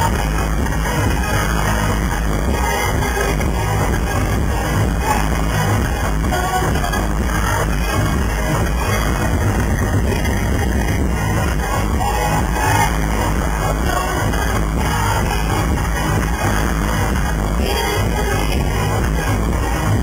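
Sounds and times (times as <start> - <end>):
electronic dance-pop music: 0.0 - 20.0
heavy bass: 0.0 - 20.0.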